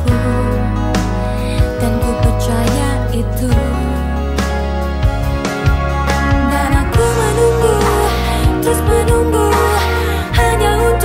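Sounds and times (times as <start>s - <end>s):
pop song with full band: 0.0s - 11.0s.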